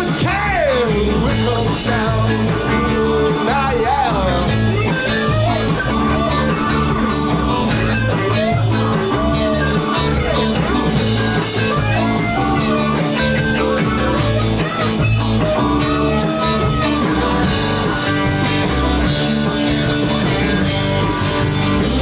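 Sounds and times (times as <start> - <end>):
man singing: 0.0 - 5.7
live rock band playing: 0.0 - 22.0.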